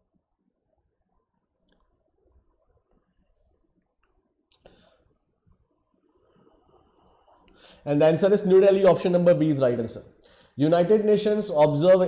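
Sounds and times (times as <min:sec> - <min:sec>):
breath drawn: 0:04.5 - 0:05.2, 0:06.2 - 0:07.9
man speaking: 0:07.8 - 0:12.0.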